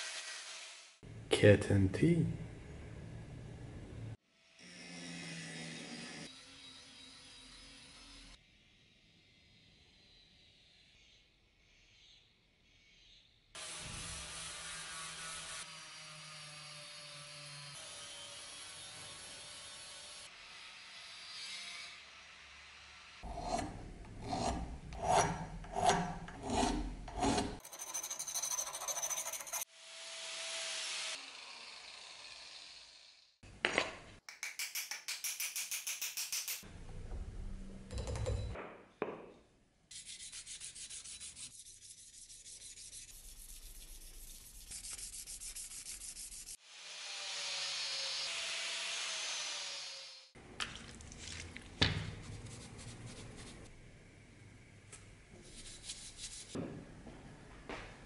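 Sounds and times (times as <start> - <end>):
file scraping steel: 23.2 - 29.7, 39.9 - 46.6
sharpening stone scraping axe edge: 23.3 - 29.7.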